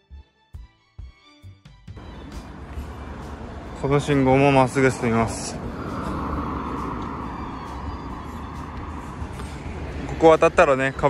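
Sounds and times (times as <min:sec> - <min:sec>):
car passing: 0:02.0 - 0:11.0
low traffic rumble: 0:02.0 - 0:11.0.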